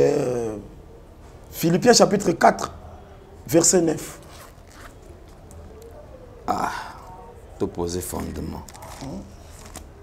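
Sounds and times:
pages rustling: 4.1s - 6.0s, 8.1s - 10.0s.

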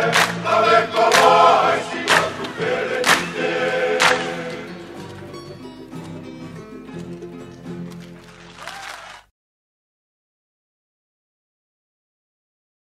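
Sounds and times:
group of men singing: 0.0s - 5.0s
quiet musical accompaniment: 0.0s - 8.6s.

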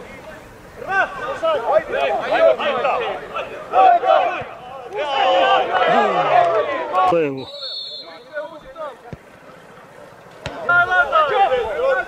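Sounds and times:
men shouting: 0.8s - 7.1s.

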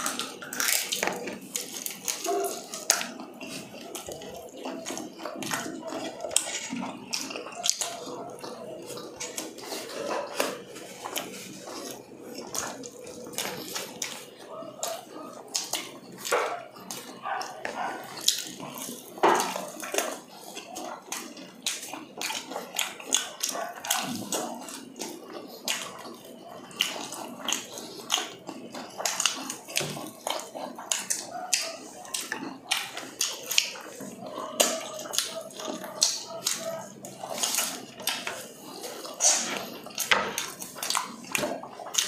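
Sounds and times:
people chewing and smacking: 0.0s - 42.0s.

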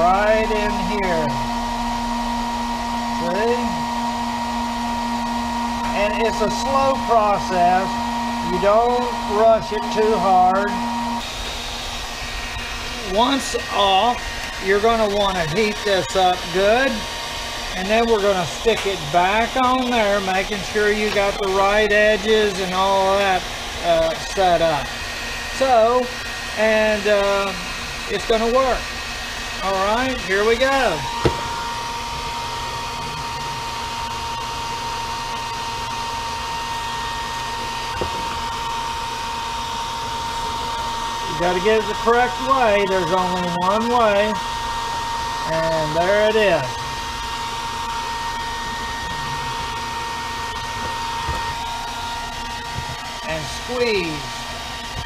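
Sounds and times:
hair dryer running: 0.0s - 55.0s.

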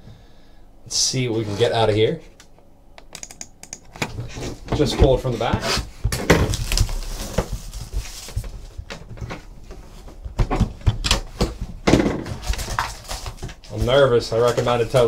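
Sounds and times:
plastic wrap crinkling: 6.4s - 8.8s, 12.3s - 15.0s.

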